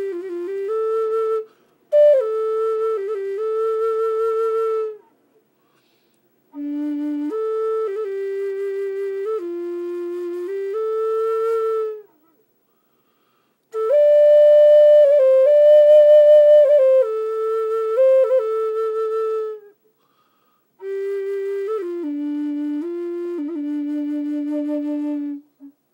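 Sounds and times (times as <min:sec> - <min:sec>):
solo flute melody: 0:00.0 - 0:05.2, 0:05.8 - 0:12.4, 0:13.7 - 0:19.9, 0:20.8 - 0:25.9.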